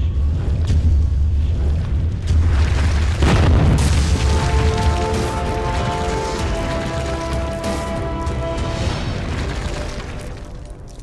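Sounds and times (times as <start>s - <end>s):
deep rumbling boom: 0.0s - 7.0s
debris crashing and crumbling: 2.3s - 11.0s.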